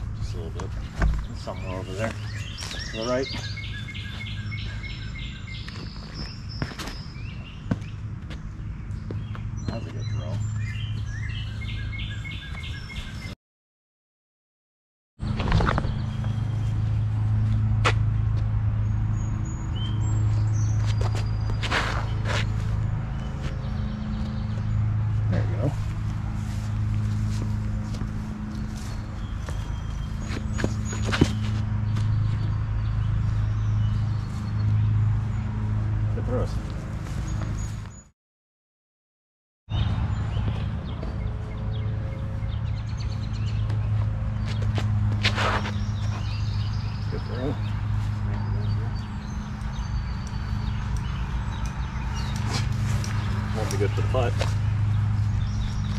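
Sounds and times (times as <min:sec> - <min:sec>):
faint birds chirping: 0:00.0 - 0:13.4, 0:18.8 - 0:38.1, 0:39.7 - 0:55.9.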